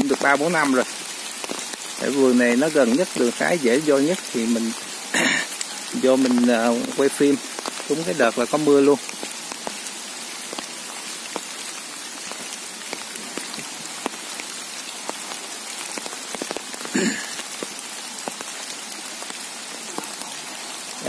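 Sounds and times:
rain falling on leaves: 0.0s - 21.0s.

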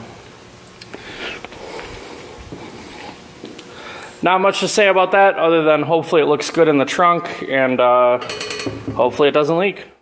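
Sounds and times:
short breath: 0.9s - 2.3s, 3.7s - 4.2s.

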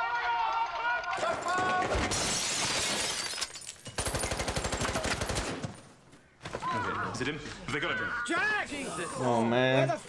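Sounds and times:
rapid automatic gunfire: 4.0s - 5.6s.

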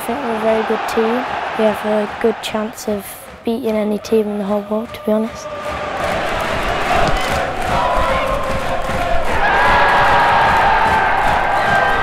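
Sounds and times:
stadium crowd cheering: 0.0s - 12.0s.

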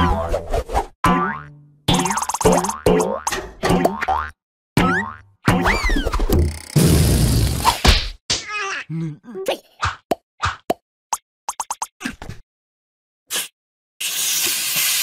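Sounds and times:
balloon bursting: 6.8s - 7.8s.

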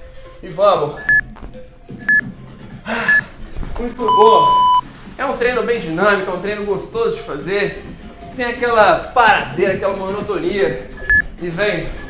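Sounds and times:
man breathing hard: 2.8s - 3.5s
short high timer beeps: 4.1s - 4.8s.

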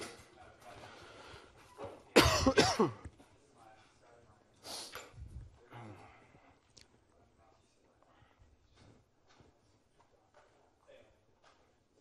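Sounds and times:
person coughing: 2.2s - 3.1s.

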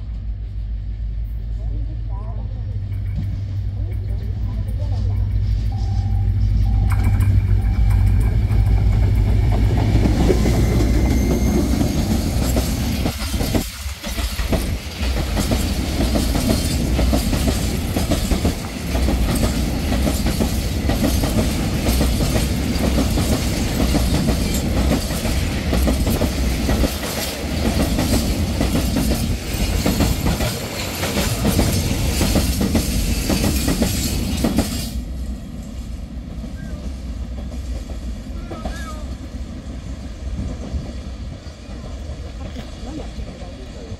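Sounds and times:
locomotive engine drone: 0.0s - 33.1s
wagons clacking over rails: 2.7s - 35.0s.

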